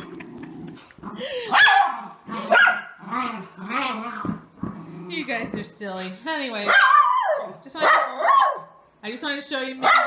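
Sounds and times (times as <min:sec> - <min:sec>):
dog barking: 0:01.5 - 0:03.0, 0:06.6 - 0:08.8, 0:09.8 - 0:10.0.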